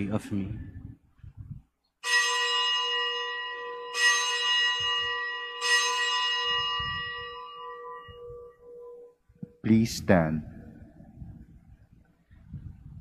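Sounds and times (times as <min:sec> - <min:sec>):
bell ringing: 0:02.0 - 0:09.2.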